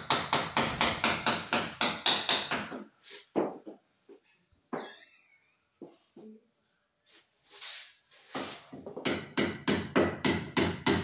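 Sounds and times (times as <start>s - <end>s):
hammer striking wood: 0.0s - 3.6s, 8.8s - 11.0s.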